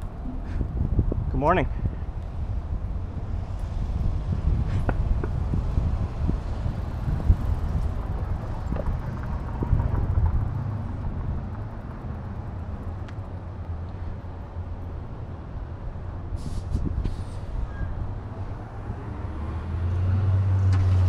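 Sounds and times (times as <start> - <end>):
street traffic: 0.0 - 21.0
wind rumbling on microphone: 0.0 - 21.0.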